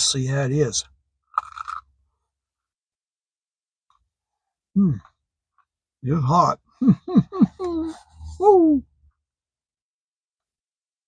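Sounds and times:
teeth crunching into sandwich: 1.3s - 2.0s.

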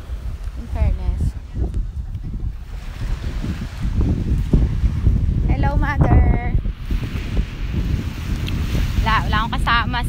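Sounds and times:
wind buffeting microphone: 0.0s - 10.0s
woman speaking: 0.6s - 1.4s, 5.5s - 6.6s, 9.0s - 10.0s.

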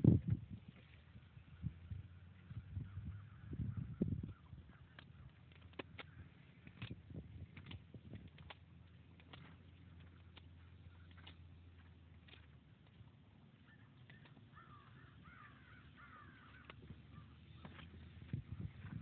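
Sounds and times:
faint bird calls: 0.7s - 7.7s, 8.4s - 19.0s
faint clicks: 4.8s - 18.4s.

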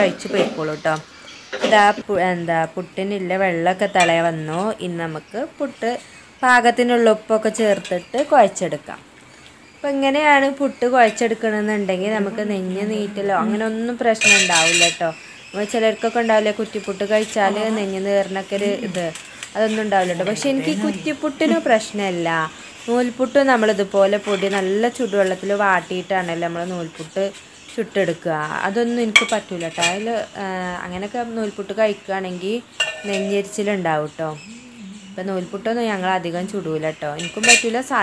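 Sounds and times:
woman talking: 0.0s - 9.1s, 9.8s - 38.0s
ladle clinking on metal bowl: 14.2s - 15.0s, 32.8s - 33.6s, 37.2s - 37.8s
metal utensils clattering: 14.2s - 15.1s, 29.1s - 30.2s, 32.8s - 33.7s, 37.2s - 37.8s
person singing long notes: 34.4s - 35.5s.

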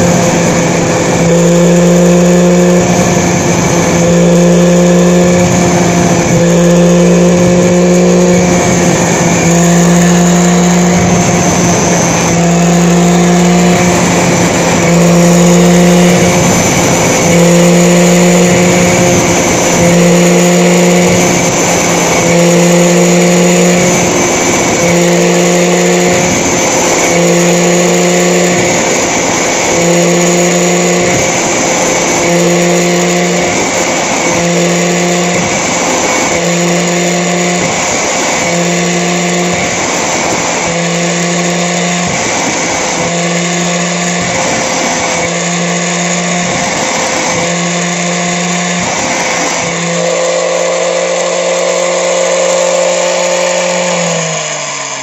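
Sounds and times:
angle grinder running: 0.0s - 55.0s
grinder spinning down: 0.0s - 55.0s
saw blade teeth grinding on disc: 0.0s - 55.0s.

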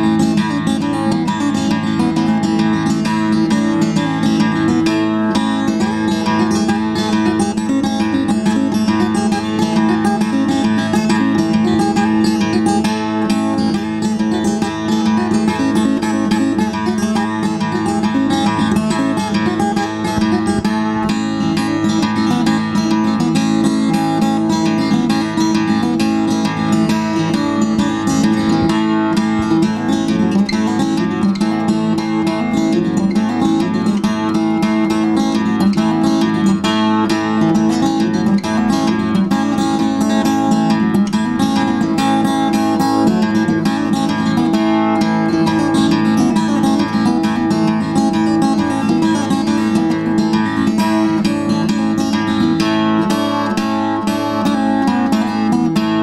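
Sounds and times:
acoustic guitar strumming chords: 0.0s - 56.0s.

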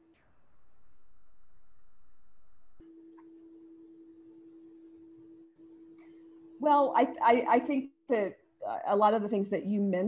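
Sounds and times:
steady electronic tones: 0.0s - 4.3s
low steady tone: 0.0s - 7.2s.

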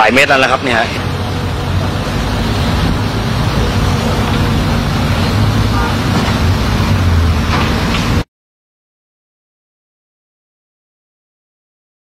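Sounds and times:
low rumbling background noise: 0.0s - 8.3s.

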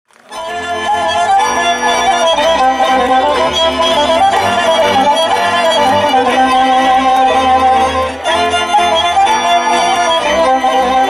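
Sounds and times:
fiddle folk melody: 0.2s - 11.0s.

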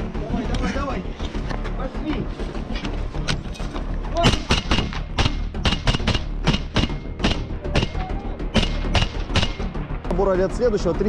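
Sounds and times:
rifle shots: 4.2s - 9.7s.

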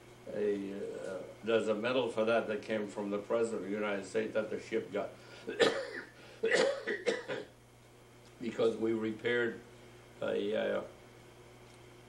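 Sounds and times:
elderly man coughing: 5.4s - 7.5s.

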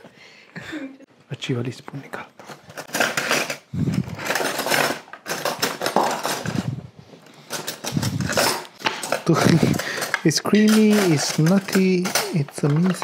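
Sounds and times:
person laughing: 0.6s - 1.1s.

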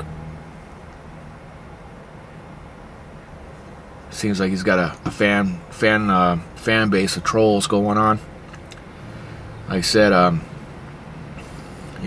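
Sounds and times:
vehicle engine hum inside cab: 0.0s - 12.0s.

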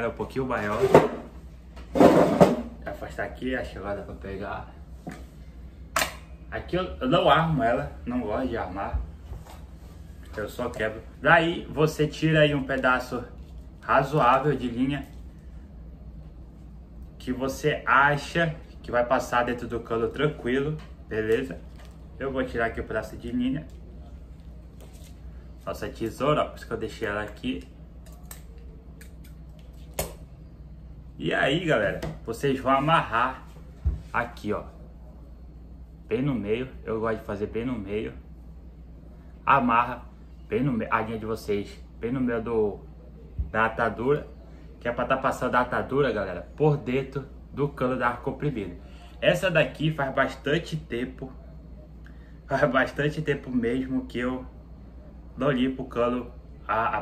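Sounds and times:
steady low hum: 0.0s - 57.0s
wooden chair scraping on floor: 0.6s - 1.3s, 1.9s - 2.7s.

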